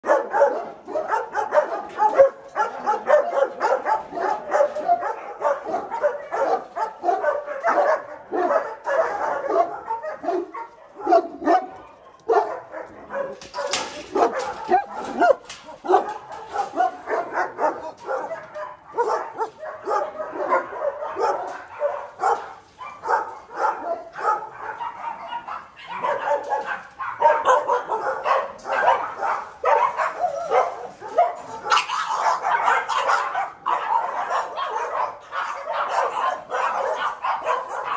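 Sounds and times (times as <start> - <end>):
many dogs barking: 0.0 - 37.9.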